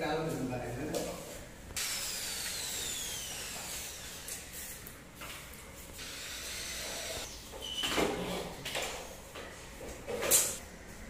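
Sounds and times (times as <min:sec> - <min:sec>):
power drill whining: 0:01.8 - 0:04.4, 0:06.0 - 0:07.4.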